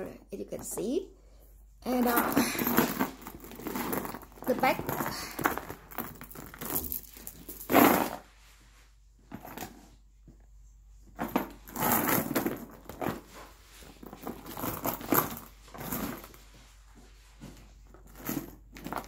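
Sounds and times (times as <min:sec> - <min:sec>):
handbag rustling and bumping: 0:01.9 - 0:08.3, 0:09.2 - 0:10.4, 0:11.0 - 0:19.0.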